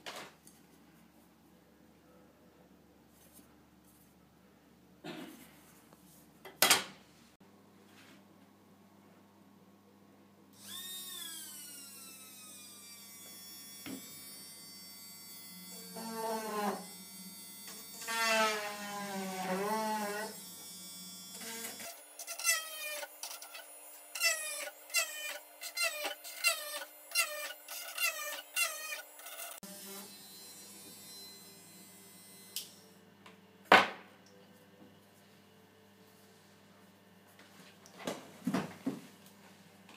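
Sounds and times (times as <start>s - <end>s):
small drill whining: 10.6s - 33.0s.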